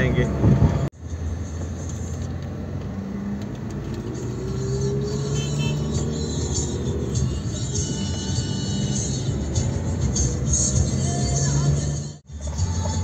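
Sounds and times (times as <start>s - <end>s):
car engine and road noise: 0.0s - 13.0s.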